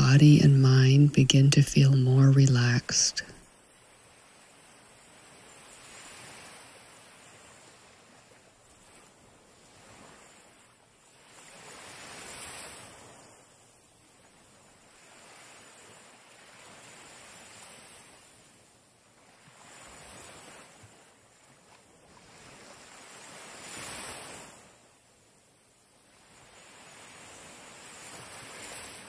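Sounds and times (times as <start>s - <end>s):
small waves washing onto shore: 1.8s - 29.0s.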